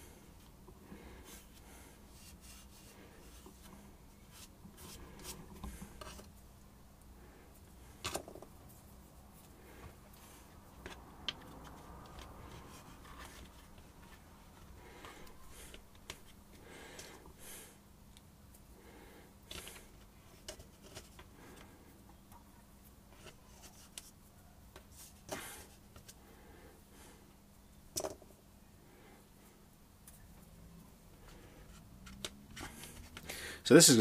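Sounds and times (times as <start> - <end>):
faint steady hum: 0.0 - 34.0
fingers smearing modelling clay: 0.3 - 6.4, 7.8 - 16.4.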